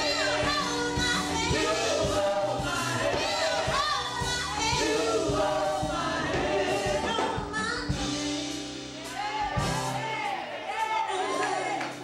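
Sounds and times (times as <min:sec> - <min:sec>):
women's group singing gospel: 0:00.0 - 0:08.3, 0:09.0 - 0:12.0
instrumental accompaniment with beat: 0:00.0 - 0:12.0.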